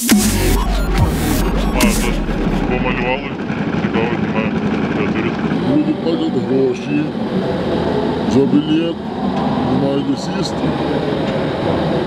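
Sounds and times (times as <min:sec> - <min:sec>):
electronic music with heavy bass: 0:00.0 - 0:03.4
train humming at platform: 0:00.3 - 0:12.0
people's voices: 0:00.5 - 0:09.0, 0:09.6 - 0:12.0.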